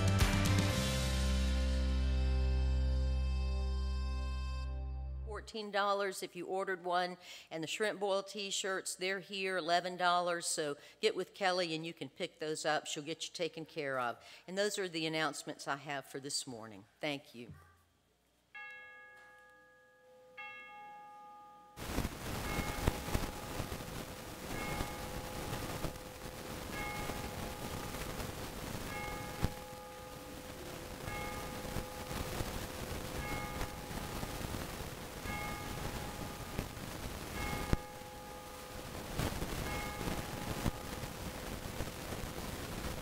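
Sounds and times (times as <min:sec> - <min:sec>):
church bell tolling: 0:18.6 - 0:23.8, 0:24.4 - 0:41.2
steady hiss: 0:21.8 - 0:43.0.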